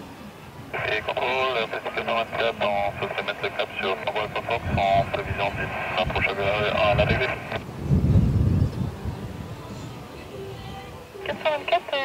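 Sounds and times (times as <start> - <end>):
jet engines rumbling: 0.0 - 12.0
air traffic control radio chatter: 0.7 - 7.6, 11.2 - 12.0.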